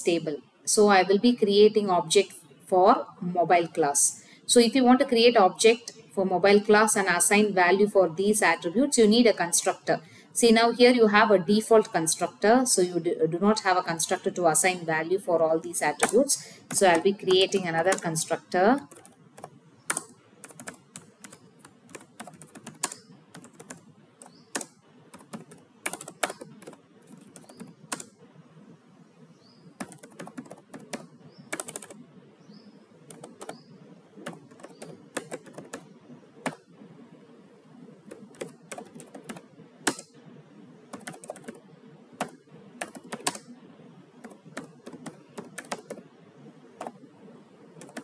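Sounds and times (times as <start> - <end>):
computer keyboard typing: 15.6 - 28.2, 29.8 - 32.0, 33.0 - 36.8, 37.9 - 40.2, 40.8 - 43.6, 44.2 - 47.1, 47.7 - 48.0.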